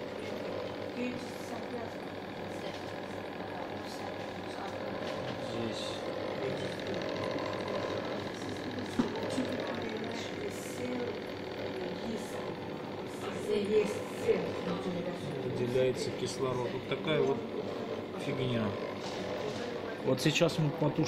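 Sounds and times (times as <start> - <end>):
mechanical hum of equipment: 0.0 - 21.0.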